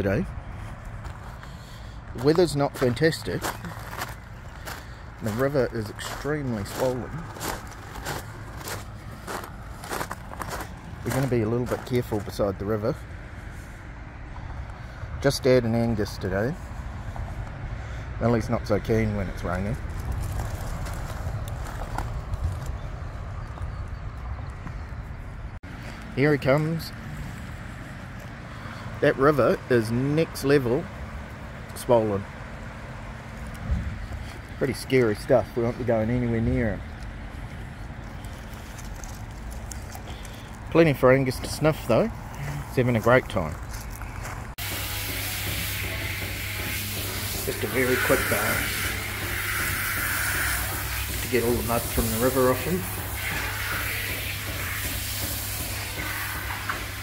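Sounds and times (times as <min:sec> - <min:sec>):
water sprayer hissing: 0:44.6 - 0:57.0.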